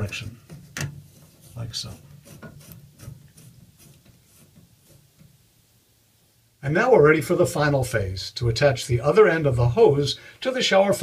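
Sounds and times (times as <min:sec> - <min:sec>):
nut threads ticking and scraping: 0:00.0 - 0:05.5.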